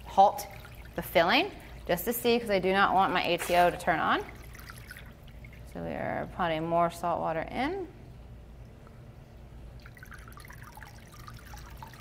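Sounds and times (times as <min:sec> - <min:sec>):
water flowing through hose: 0:02.8 - 0:05.5.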